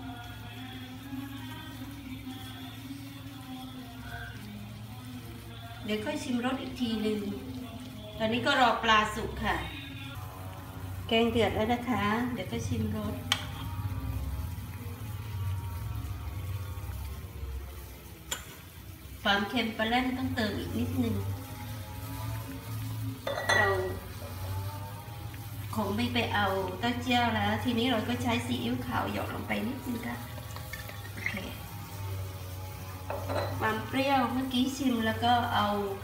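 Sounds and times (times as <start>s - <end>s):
soup boiling and bubbling: 0.0s - 36.0s.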